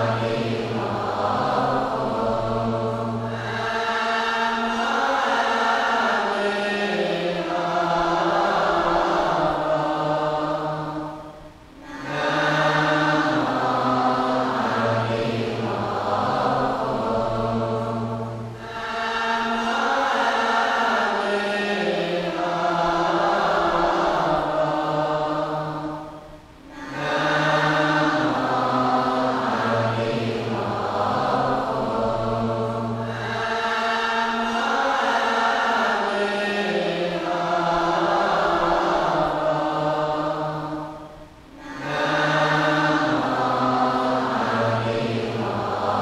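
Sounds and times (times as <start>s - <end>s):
group chanting slowly: 0.0s - 46.0s.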